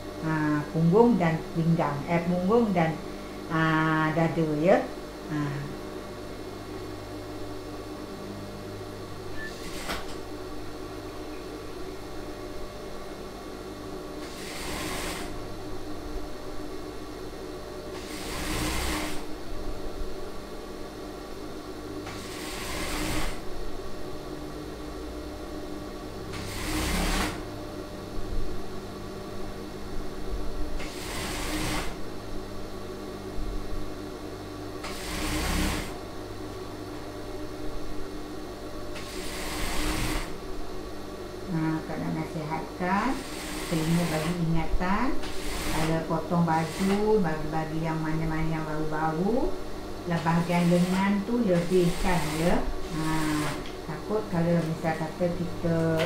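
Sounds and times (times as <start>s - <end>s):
sewing machine motor hum: 9.3s - 10.3s, 14.2s - 15.6s, 17.8s - 19.3s, 22.0s - 23.5s, 26.2s - 27.6s, 30.7s - 32.0s, 34.8s - 36.1s, 38.9s - 40.4s, 42.7s - 47.6s, 50.0s - 56.0s
sewing machine stitching: 9.4s - 10.1s, 14.2s - 15.3s, 18.0s - 19.2s, 22.1s - 23.4s, 26.4s - 27.4s, 30.8s - 32.0s, 34.8s - 36.0s, 39.0s - 40.4s, 45.2s - 46.0s, 51.6s - 53.7s.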